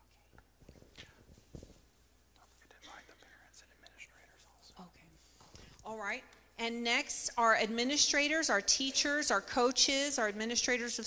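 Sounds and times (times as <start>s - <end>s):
people whispering: 0.0s - 1.5s, 2.3s - 5.9s.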